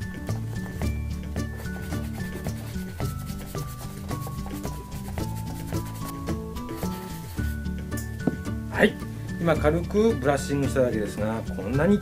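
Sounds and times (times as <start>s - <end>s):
background music: 0.0s - 12.0s
brush rubbing on leather: 1.4s - 7.6s.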